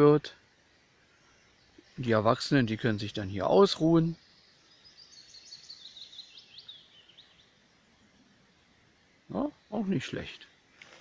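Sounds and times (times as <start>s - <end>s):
faint songbird song: 0.0s - 11.0s.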